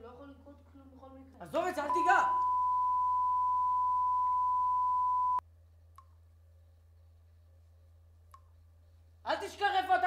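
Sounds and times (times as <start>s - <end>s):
faint low hum: 0.0s - 10.0s
high electronic beep: 1.9s - 5.4s.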